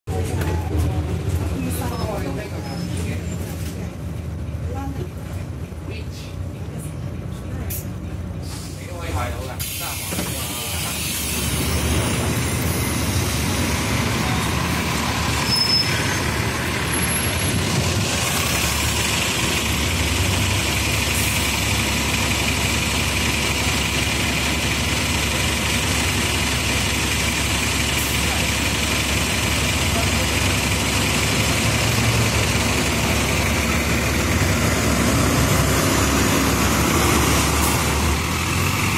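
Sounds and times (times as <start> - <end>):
bus diesel engines running: 0.1 - 38.9
loud street traffic: 0.1 - 38.9.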